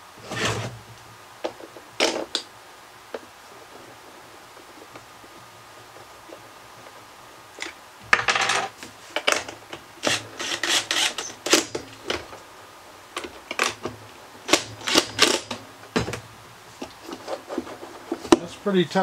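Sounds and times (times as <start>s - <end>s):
cordless drill driving screw: 10.0s - 11.8s.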